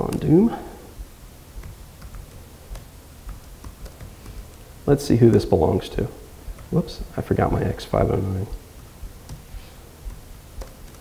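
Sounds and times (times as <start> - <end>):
computer keyboard typing: 1.6 - 6.9, 9.0 - 11.0.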